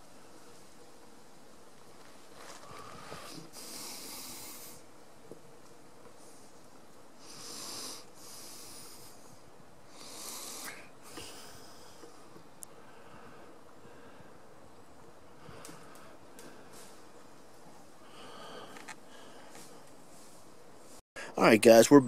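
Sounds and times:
soft hissing breaths: 0:00.0 - 0:21.5.

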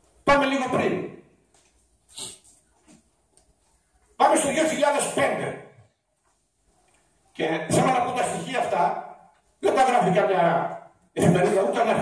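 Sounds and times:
faint small noises: 0:01.4 - 0:04.2, 0:05.8 - 0:07.4.

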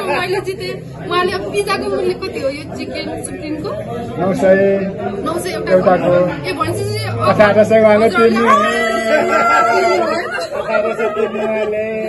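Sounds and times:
women chatting: 0:00.0 - 0:03.8, 0:06.4 - 0:07.3.

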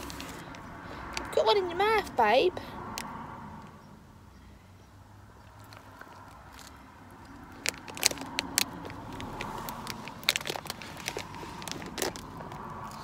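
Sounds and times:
crisps crunching: 0:05.6 - 0:13.0
snack bag rustling: 0:07.4 - 0:13.0.

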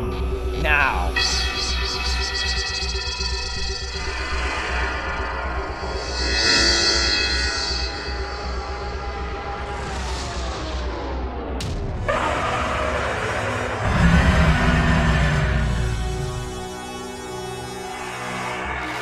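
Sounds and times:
sci-fi soundtrack music: 0:00.0 - 0:19.0
shimmering swell: 0:03.9 - 0:09.4, 0:13.6 - 0:17.4
electronic teleport effects: 0:13.7 - 0:18.0.

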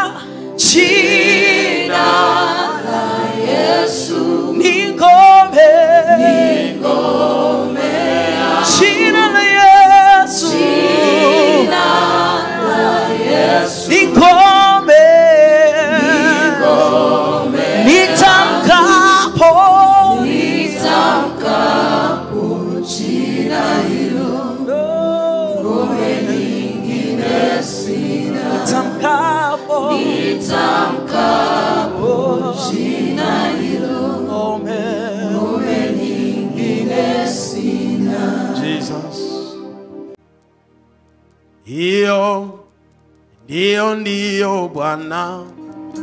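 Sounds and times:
people singing along: 0:00.0 - 0:39.8
man singing gospel song: 0:08.6 - 0:10.7, 0:13.8 - 0:16.9, 0:17.8 - 0:20.2, 0:38.6 - 0:39.6, 0:41.7 - 0:42.7, 0:43.5 - 0:45.6.

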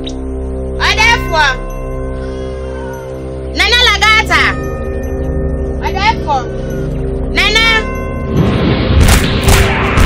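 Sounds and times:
background music: 0:00.0 - 0:10.0
loud rushing noise: 0:08.3 - 0:10.0.

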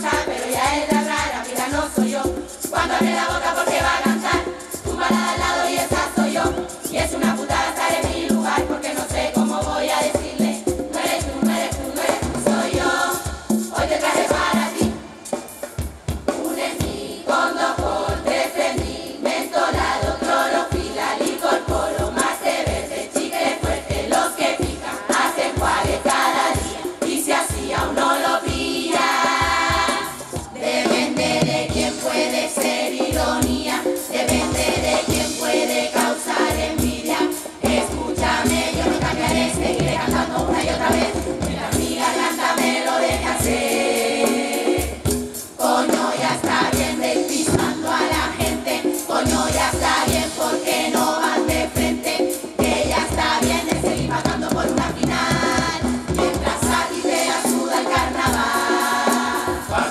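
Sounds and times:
steady drum beat: 0:00.0 - 0:59.9
women's chorus singing: 0:00.0 - 0:59.9.

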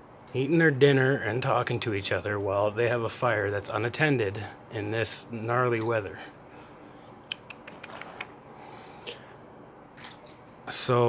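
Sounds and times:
faint background hiss: 0:00.0 - 0:11.0
light irregular clicks: 0:07.2 - 0:08.3.

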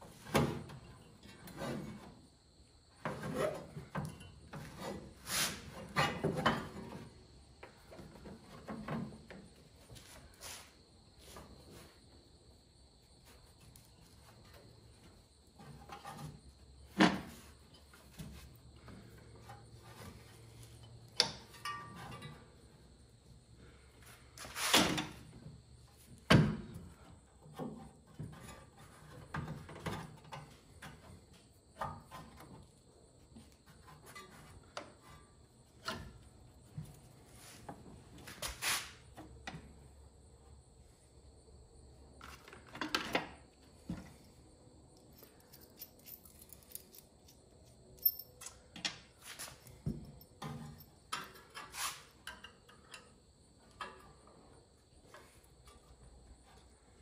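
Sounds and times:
metallic clinks of hand tools: 0:45.2 - 0:47.4, 0:48.0 - 0:48.6.

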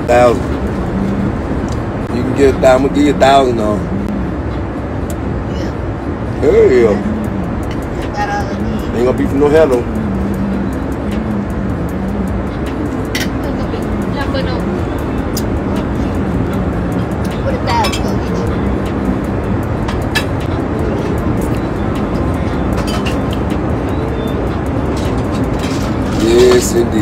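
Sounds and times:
jet cabin drone: 0:00.0 - 0:27.0.

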